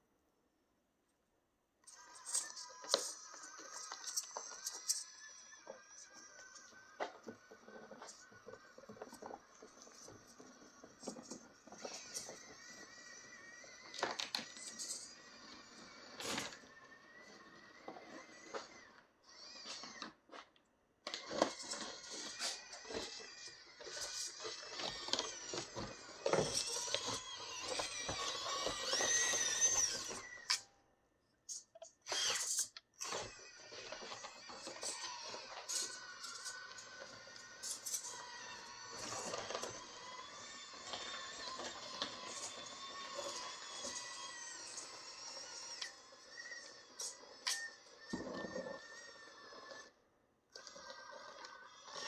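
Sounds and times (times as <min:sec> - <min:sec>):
faint high electric motor whine: 0:01.8 - 0:20.3, 0:21.0 - 0:52.0.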